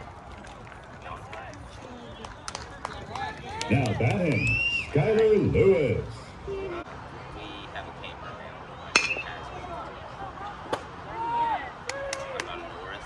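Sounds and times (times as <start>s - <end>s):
metal bat hitting baseball: 8.9s - 9.4s.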